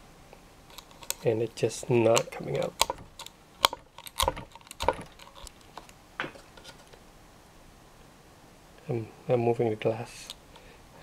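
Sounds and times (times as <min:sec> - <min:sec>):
tool clicking on glass print bed: 0:02.1 - 0:05.5.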